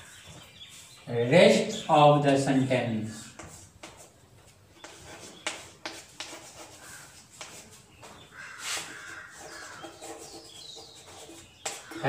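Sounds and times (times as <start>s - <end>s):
chalk scratching on chalkboard: 3.3s - 4.2s, 4.8s - 12.0s
bird calling: 7.9s - 12.0s.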